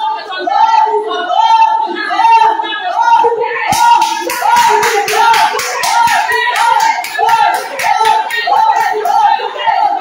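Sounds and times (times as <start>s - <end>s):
person chanting: 3.2s - 10.0s
rhythmic hand clapping: 3.7s - 9.8s.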